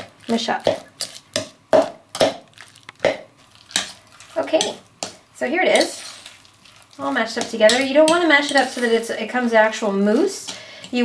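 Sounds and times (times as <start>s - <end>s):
knife chopping avocado in bowl: 0.0s - 4.0s.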